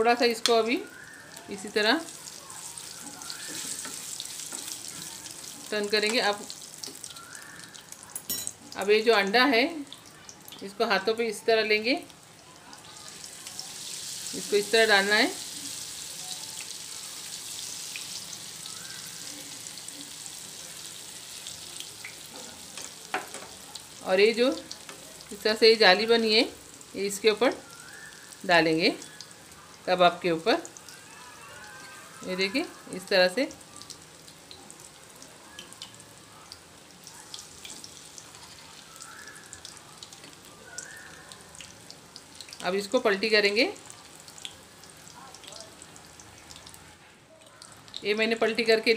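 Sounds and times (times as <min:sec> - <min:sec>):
hot oil sizzling in a pan: 0:00.0 - 0:48.9
egg crackling in oil: 0:36.6 - 0:42.7.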